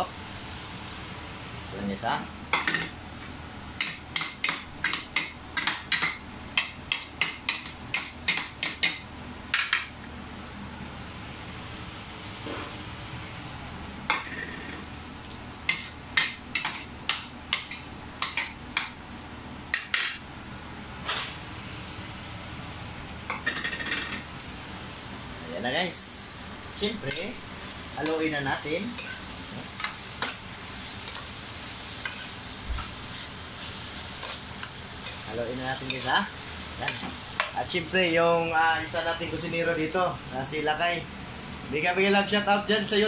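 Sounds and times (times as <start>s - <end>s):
meat sizzling: 11.0s - 19.1s, 21.4s - 42.4s.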